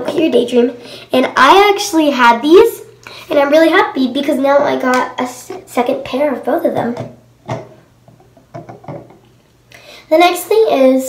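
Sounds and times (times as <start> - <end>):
small items tapping on table: 7.0 - 9.2.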